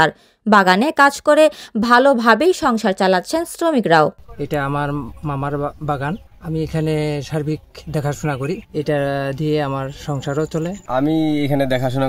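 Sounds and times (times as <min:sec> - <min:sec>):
man speaking: 0:04.2 - 0:09.0, 0:10.1 - 0:12.0.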